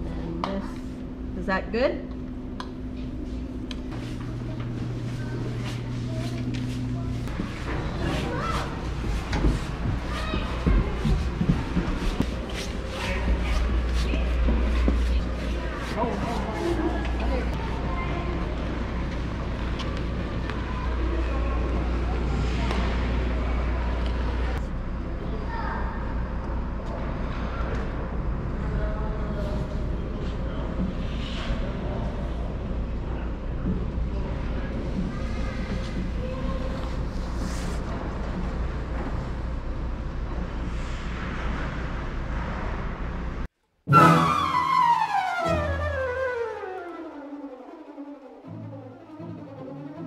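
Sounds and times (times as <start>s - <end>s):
steady low hum: 0.0s - 43.5s
background chatter: 4.0s - 25.5s.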